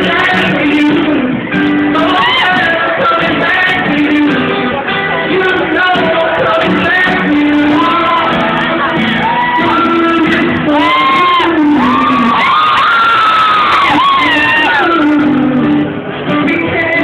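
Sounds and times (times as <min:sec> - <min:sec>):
acoustic guitar: 0:00.0 - 0:17.0
crowd singing and shouting along: 0:00.0 - 0:17.0
man singing into microphone: 0:00.0 - 0:17.0.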